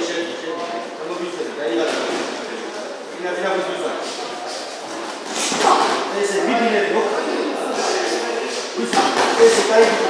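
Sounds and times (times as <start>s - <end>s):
people talking in echoing hall: 0.0s - 10.0s.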